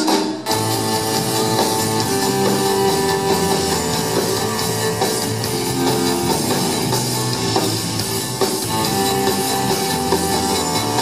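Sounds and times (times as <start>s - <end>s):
drum kit: 0.0s - 11.0s
live rock band playing: 0.0s - 11.0s
electric guitar: 0.4s - 11.0s.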